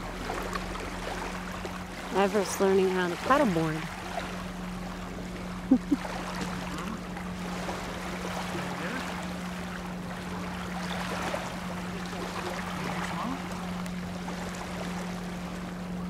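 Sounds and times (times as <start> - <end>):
paddle dipping in water: 0.0 - 16.0
steady low hum: 0.0 - 16.0.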